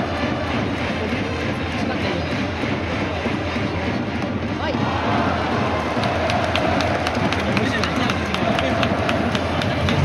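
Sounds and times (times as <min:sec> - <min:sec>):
crowd of many voices: 0:00.0 - 0:10.0
rhythmic sharp clacks: 0:00.0 - 0:10.0.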